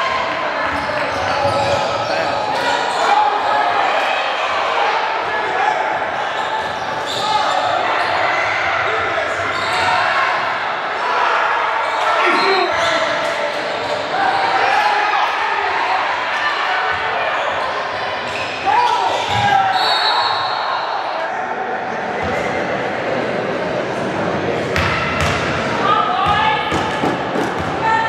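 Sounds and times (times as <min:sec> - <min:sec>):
voices echoing in a gym: 0:00.0 - 0:28.0
referee's whistle: 0:19.2 - 0:20.7
basketball bouncing on court: 0:24.8 - 0:25.4.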